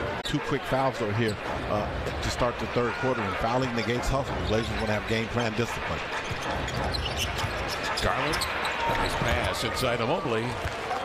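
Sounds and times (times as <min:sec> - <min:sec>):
crowd hum: 0:00.0 - 0:11.0
basketball bouncing: 0:06.2 - 0:09.3
shoe squeaks on court: 0:06.2 - 0:09.5.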